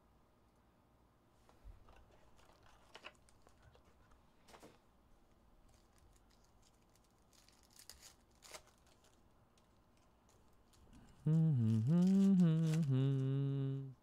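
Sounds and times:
foil wrappers rustling and tearing: 5.6 - 13.0.

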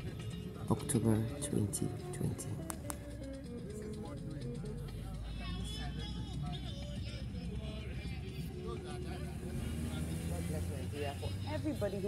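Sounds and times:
car road and engine rumble: 0.0 - 12.0
faint indistinct voices: 0.0 - 12.0.

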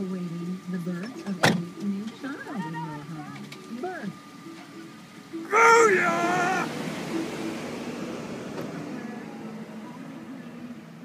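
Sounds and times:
car door slamming: 1.4 - 1.8
person's wavering voice: 5.5 - 6.7.

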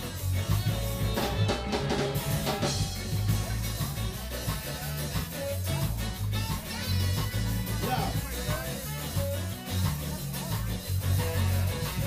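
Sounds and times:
drums: 0.0 - 12.0
electric guitar: 0.0 - 12.0
moving bass line: 0.0 - 12.0
ska band playing: 0.0 - 12.0.

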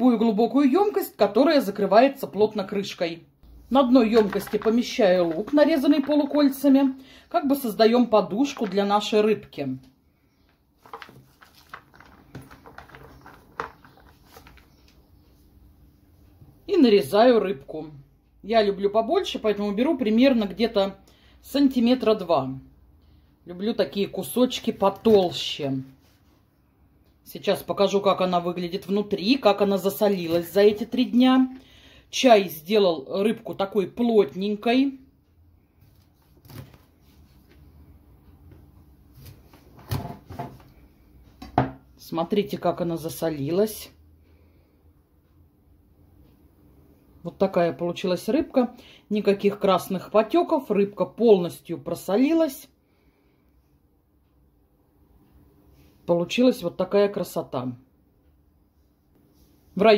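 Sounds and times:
knock on cutting board: 41.4 - 41.8.

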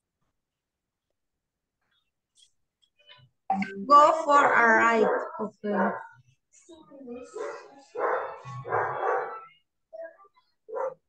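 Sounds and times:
dog barking: 4.5 - 6.2, 7.3 - 9.5, 10.7 - 11.0.

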